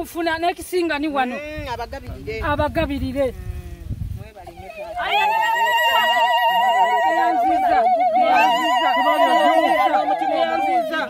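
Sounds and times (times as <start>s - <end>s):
people talking: 4.2s - 11.0s
crowd ululating: 4.7s - 11.0s.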